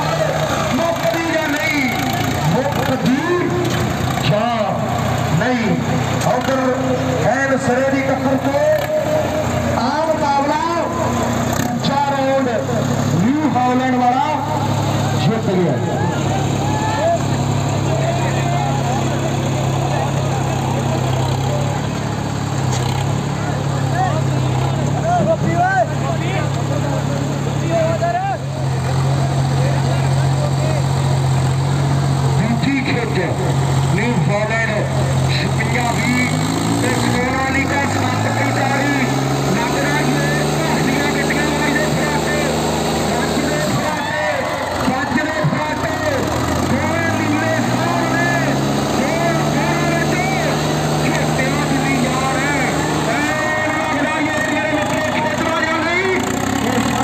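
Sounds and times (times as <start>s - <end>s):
tractor diesel engines labouring: 0.0s - 57.0s.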